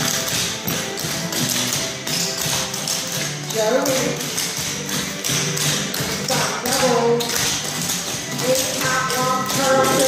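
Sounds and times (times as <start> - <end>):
dance shoes tapping on hard floor: 0.0 - 10.0.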